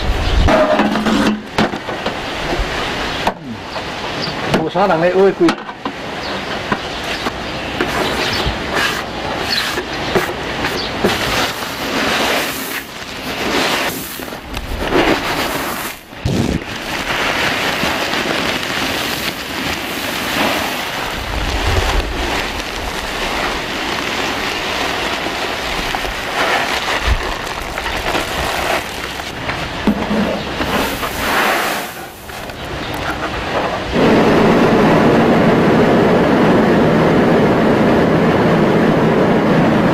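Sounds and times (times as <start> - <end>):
rice grains pouring: 11.1 - 29.4, 30.4 - 32.6
rice-milling machine rattling: 16.6 - 33.0.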